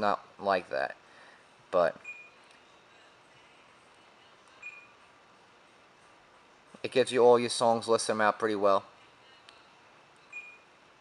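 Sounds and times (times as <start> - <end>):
short high touchscreen beeps: 2.0 - 2.4, 4.6 - 5.0, 10.3 - 10.8.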